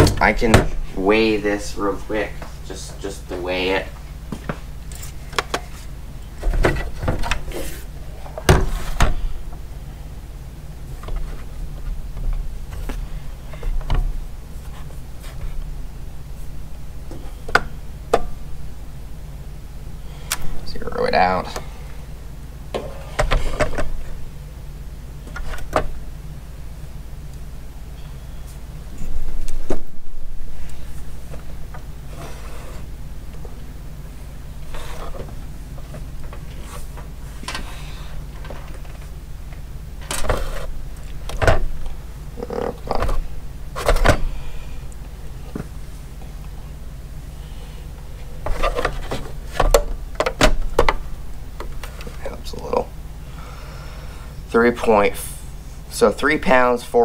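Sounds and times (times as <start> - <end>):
steady low hum: 0.0 - 57.0
plastic housing rubbing and scraping: 48.3 - 50.4.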